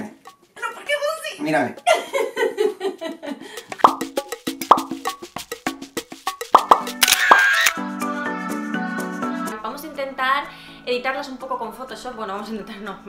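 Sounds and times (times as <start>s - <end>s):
short plopping pops: 3.8s - 5.0s, 6.5s - 7.4s
quick clicks: 6.6s - 7.8s.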